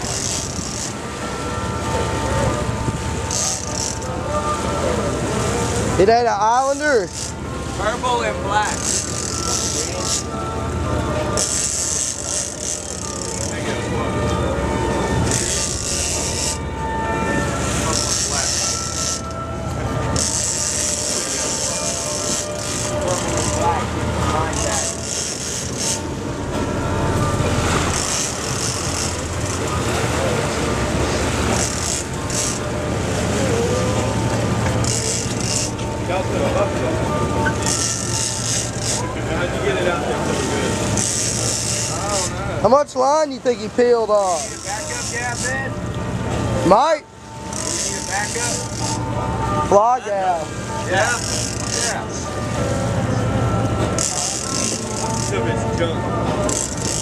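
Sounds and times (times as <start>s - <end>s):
boat engines running: 0.0s - 57.0s.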